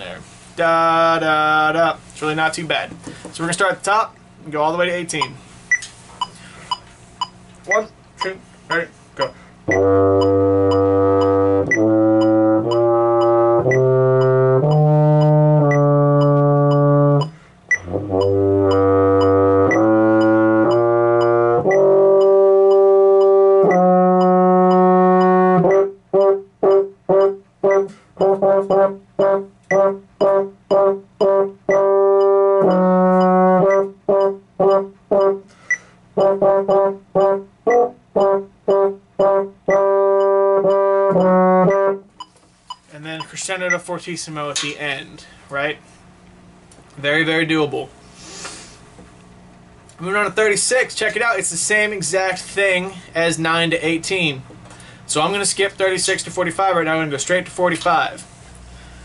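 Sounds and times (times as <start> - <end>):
baritone horn playing: 9.7 - 35.5, 36.2 - 42.1.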